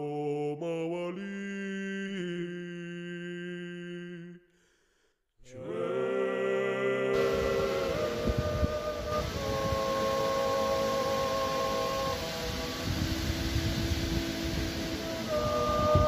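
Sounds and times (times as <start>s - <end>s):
men singing polyphonic chant: 5.5s - 16.0s
wind buffeting microphone: 7.2s - 16.0s.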